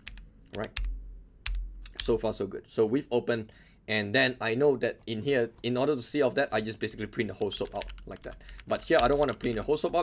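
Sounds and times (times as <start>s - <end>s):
keyboard keystrokes: 7.4s - 9.7s.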